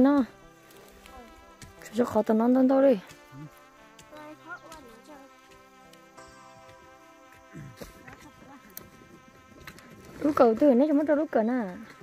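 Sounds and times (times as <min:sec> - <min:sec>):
insect buzzing: 0:00.0 - 0:12.0.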